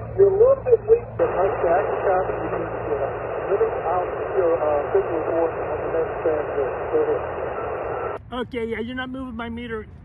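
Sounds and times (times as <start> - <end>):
voice over radio speaker: 0.2 - 8.2
radio static hiss: 0.3 - 8.2.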